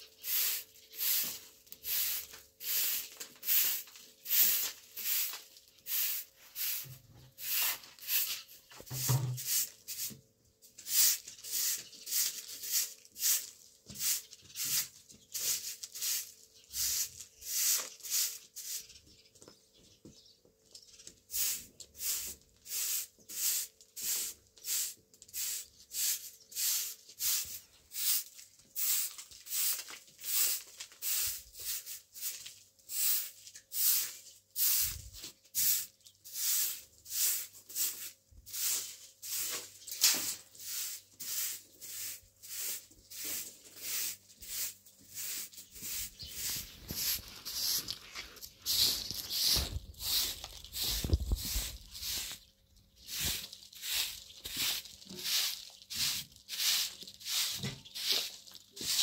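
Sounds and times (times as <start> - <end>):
broom sweeping dirt: 0.0 - 19.1, 21.1 - 59.0.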